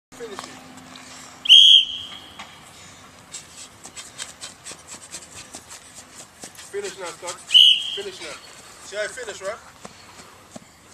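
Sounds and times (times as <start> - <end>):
sports whistle blast: 1.4 - 2.4, 7.5 - 8.3.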